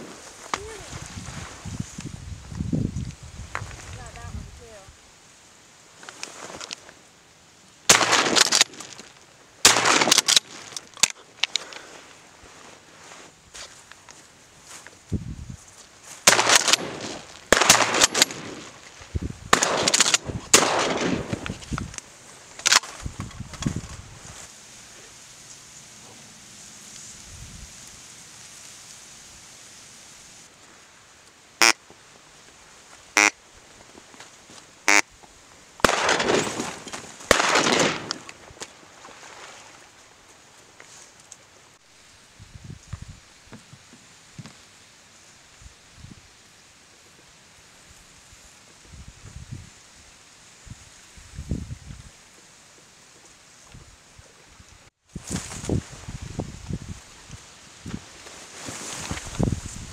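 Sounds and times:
rustling in reeds: 0.0s - 59.9s
shotgun shots: 7.9s - 8.8s, 9.6s - 10.4s, 16.3s - 18.7s, 19.5s - 21.4s, 35.8s - 38.2s.

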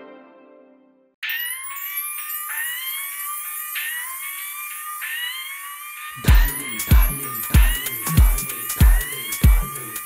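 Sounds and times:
high shimmer: 1.2s - 10.0s
siren-like synth tone: 1.2s - 10.0s.

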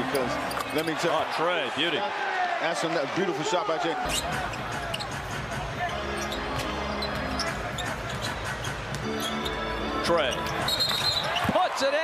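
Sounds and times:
crowd: 0.0s - 12.0s.

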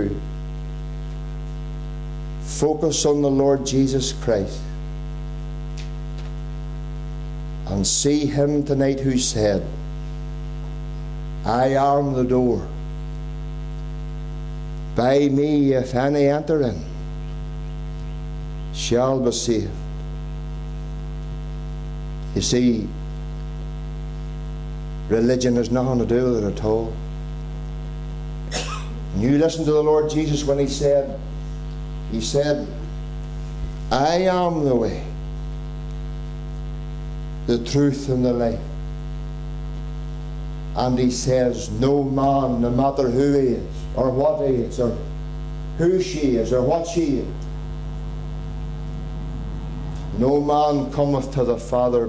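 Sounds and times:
electrical mains hum: 0.0s - 52.0s.

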